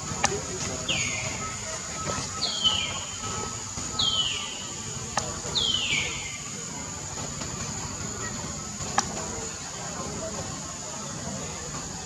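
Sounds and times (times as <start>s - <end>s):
high-pitched background hiss: 0.0s - 12.0s.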